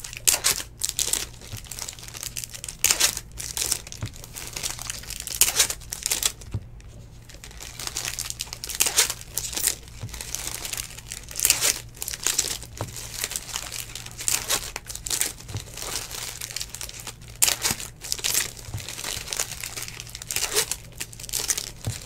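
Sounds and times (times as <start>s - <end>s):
foil wrappers crinkling and tearing: 0.0s - 22.0s.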